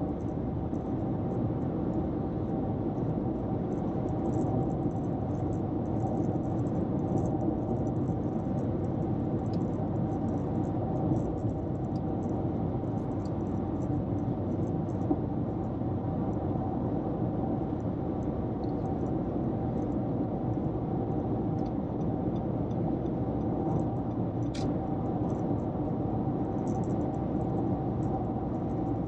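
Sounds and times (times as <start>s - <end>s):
car road and engine noise: 0.0s - 29.0s.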